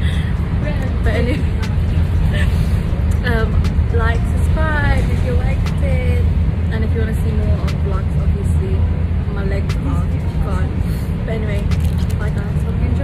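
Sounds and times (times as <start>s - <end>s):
bus engine and road noise: 0.0s - 13.0s.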